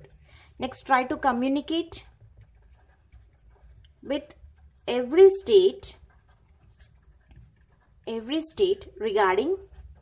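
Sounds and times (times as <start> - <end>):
marker writing on paper: 1.4 - 10.0.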